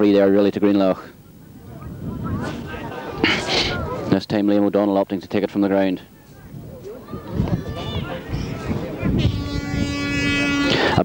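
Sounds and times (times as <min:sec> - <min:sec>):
low wind: 0:00.0 - 0:11.0.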